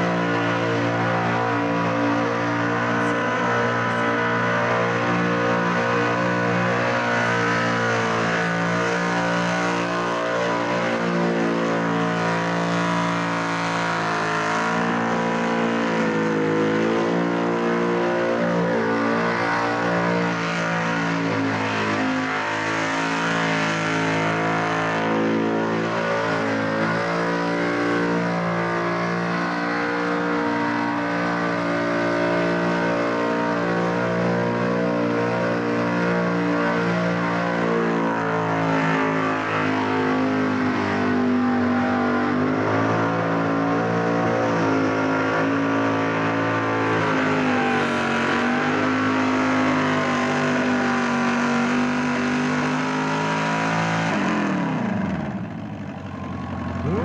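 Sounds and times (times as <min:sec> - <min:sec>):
car engine at high revs: 0:00.0 - 0:57.0.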